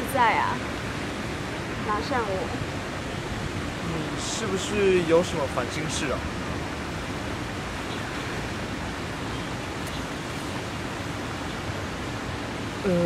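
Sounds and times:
steady rushing noise: 0.0 - 13.0.

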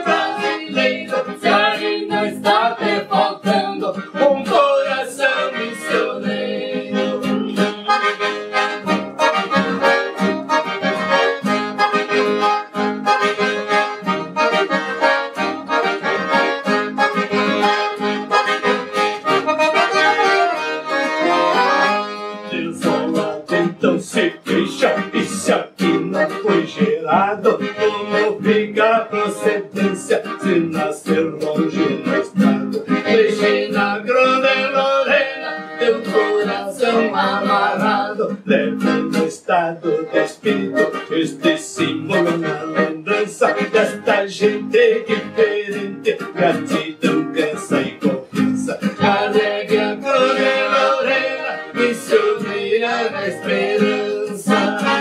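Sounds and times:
accordion melody: 0.0 - 55.0
classical guitar: 0.0 - 55.0
strummed guitar chords: 0.0 - 55.0.

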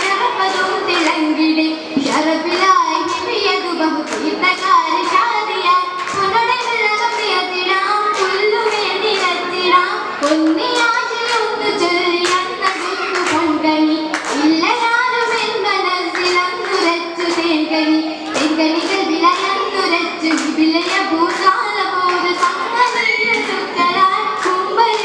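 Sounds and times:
girls singing together: 0.0 - 25.0
rhythmic hand claps: 0.0 - 25.0.

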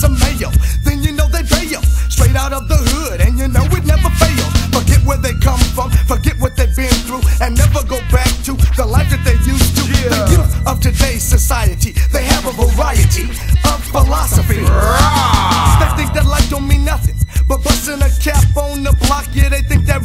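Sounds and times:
rapping over a beat: 0.0 - 20.0
steady drum beat: 0.0 - 20.0
heavy bass line: 2.2 - 6.6, 7.6 - 11.8, 13.0 - 17.3, 19.5 - 20.0.

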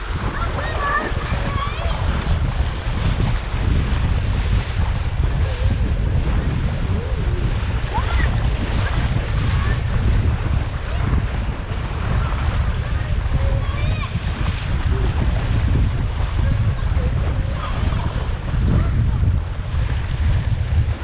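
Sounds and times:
water splashing along board hull: 0.0 - 21.0
wind buffeting microphone: 0.0 - 21.0.

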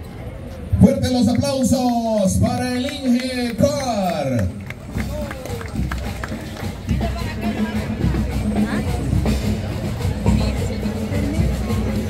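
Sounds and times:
crowd voices talking: 0.0 - 12.0
band music with heavy drum beat: 4.6 - 12.0.

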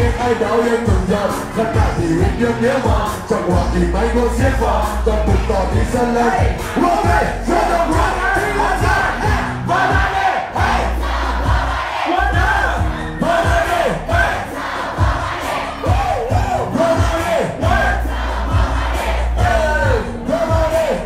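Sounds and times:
booming bass beat: 0.0 - 21.0
rapping into microphone: 0.0 - 21.0
crowd shouting along: 5.3 - 21.0.

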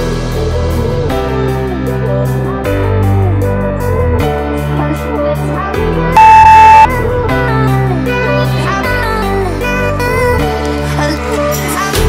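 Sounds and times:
electronic beep: 6.2 - 6.9.

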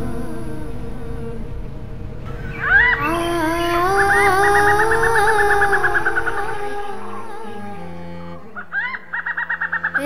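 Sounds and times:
low held music notes: 0.0 - 10.0.

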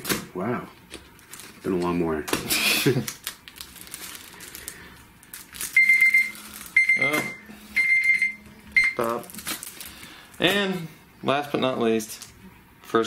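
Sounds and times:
electronic beeps: 5.8 - 9.0.

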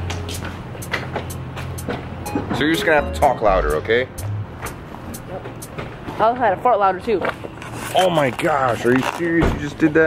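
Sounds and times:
road traffic hiss: 0.0 - 2.9.

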